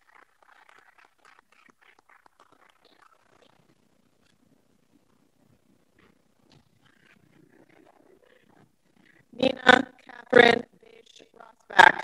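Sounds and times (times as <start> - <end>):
faint room sounds: 0.0 - 12.0.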